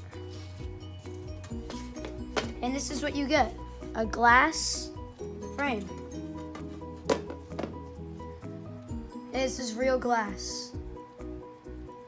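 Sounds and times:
background music sustained notes: 0:00.0 - 0:12.0.

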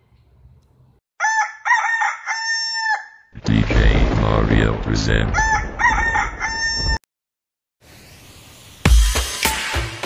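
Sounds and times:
rooster crowing: 0:01.2 - 0:03.2, 0:05.4 - 0:07.0.

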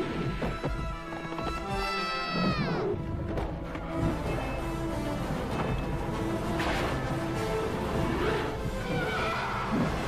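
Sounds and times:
dramatic orchestral score: 0:00.0 - 0:10.0.

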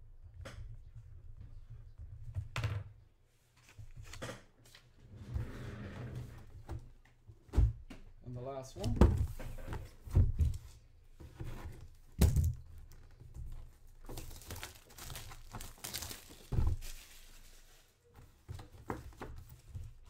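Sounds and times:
packaging crinkling and tearing: 0:14.0 - 0:17.3
cardboard box thumps: 0:15.8 - 0:17.0.

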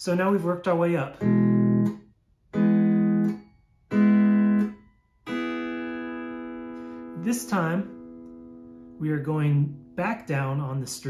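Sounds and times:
pedal steel guitar chords: 0:00.1 - 0:11.0.

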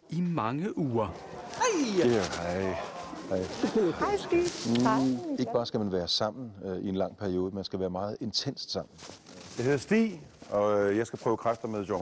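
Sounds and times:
people calling out greetings: 0:01.1 - 0:05.6.

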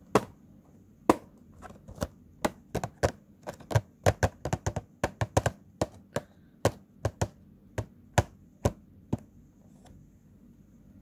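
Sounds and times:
fingers tapping on cardboard box: 0:02.0 - 0:09.3.

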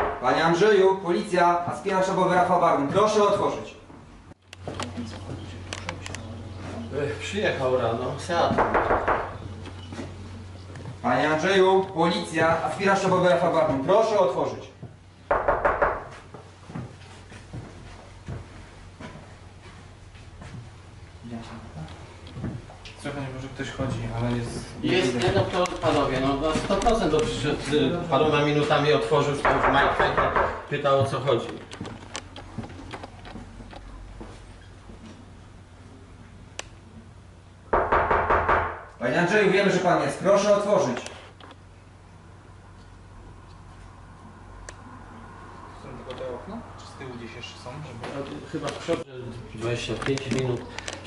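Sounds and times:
loud knocks on front door: 0:00.0 - 0:00.3, 0:08.5 - 0:09.4, 0:15.3 - 0:16.2, 0:29.4 - 0:30.7, 0:37.8 - 0:38.9.

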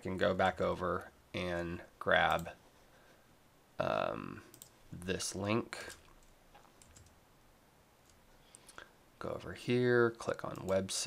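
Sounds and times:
soft clicks: 0:04.5 - 0:04.8.

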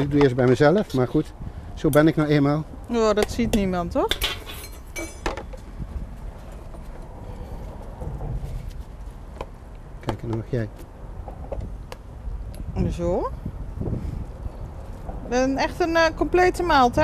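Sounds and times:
steady low rumble: 0:01.2 - 0:17.0.

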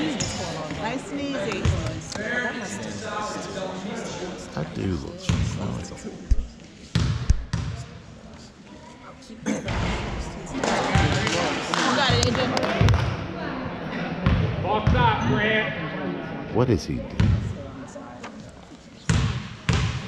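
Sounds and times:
spectators' voices echoing: 0:00.0 - 0:20.0.

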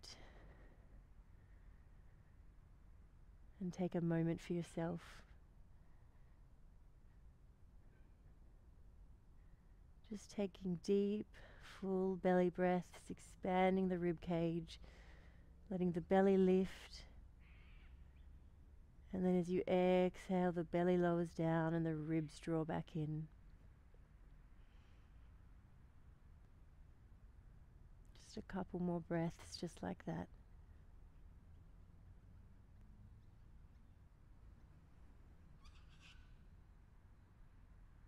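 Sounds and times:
faint bird call: 0:17.4 - 0:18.3, 0:35.6 - 0:36.5.

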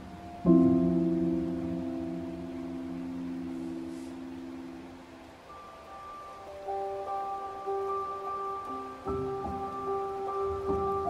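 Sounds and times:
slow solo piano: 0:00.0 - 0:11.0.

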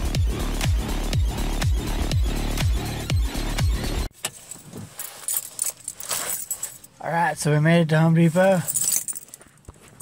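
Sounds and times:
keys jangling: 0:04.2 - 0:07.0, 0:08.5 - 0:10.0.

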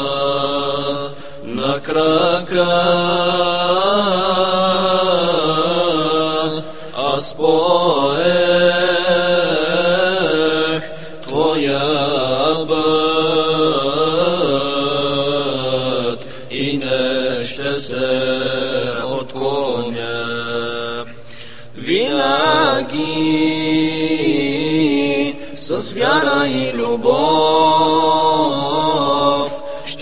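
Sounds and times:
low vocal drone: 0:00.0 - 0:30.0
singer breathing: 0:01.1 - 0:01.5, 0:06.6 - 0:07.0, 0:10.9 - 0:11.3, 0:16.2 - 0:16.5, 0:21.1 - 0:21.8, 0:25.4 - 0:25.6, 0:29.6 - 0:29.9.

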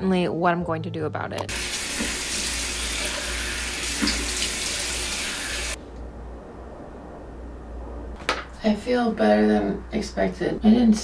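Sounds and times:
tap running into sink: 0:01.4 - 0:05.6
low hum: 0:05.6 - 0:10.6.

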